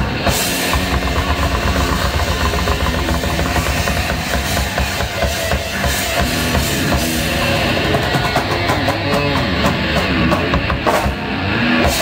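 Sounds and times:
drums pounding: 0.0s - 12.0s
rock band playing live: 0.0s - 12.0s.

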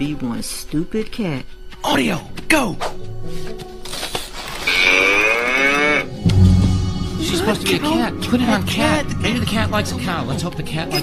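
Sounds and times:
toy playing cow moo: 4.6s - 6.1s.

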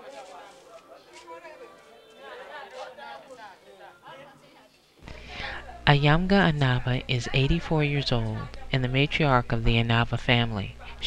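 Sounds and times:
women chatting: 4.1s - 11.0s.

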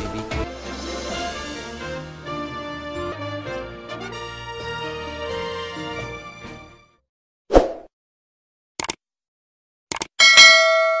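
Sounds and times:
bright bell ding: 10.2s - 11.0s.

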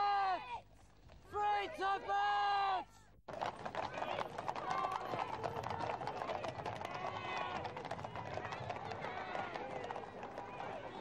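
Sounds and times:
hooves clip-clopping on pavement: 3.3s - 11.0s.

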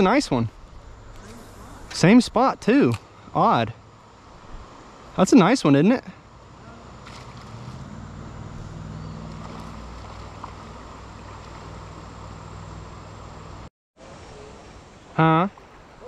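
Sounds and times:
creek water: 0.0s - 16.0s
wind: 0.0s - 16.0s
low even hum: 6.0s - 15.1s.

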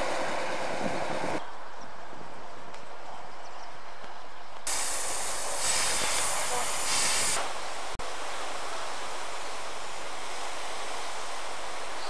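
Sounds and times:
steam locomotive hissing steam: 4.7s - 7.7s.

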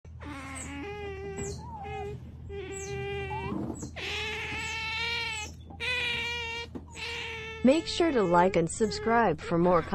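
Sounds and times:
otters whining calls: 0.1s - 9.9s.

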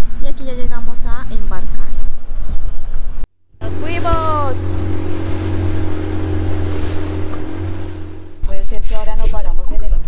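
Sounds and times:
wind: 0.0s - 10.0s
boat engine droning: 3.5s - 9.6s
rushing water: 3.6s - 8.4s.

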